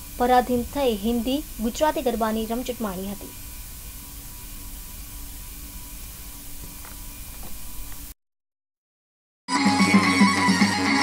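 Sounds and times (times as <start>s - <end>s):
faint constant hum: 0.0s - 8.1s
steady hiss: 0.0s - 8.2s.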